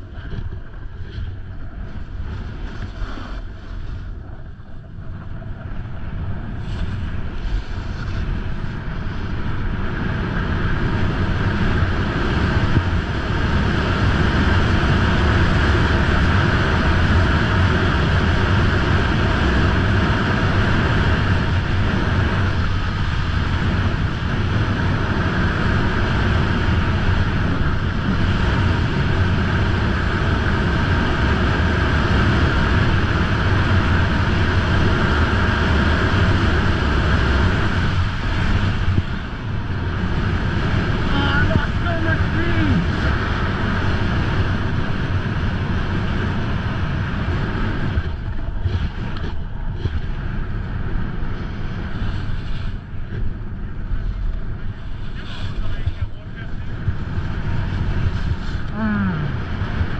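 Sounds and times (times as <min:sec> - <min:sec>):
snowboard scraping over snow: 0:00.0 - 0:59.9
wind rushing over microphone: 0:00.0 - 0:59.9
person speaking: 0:41.1 - 0:42.9.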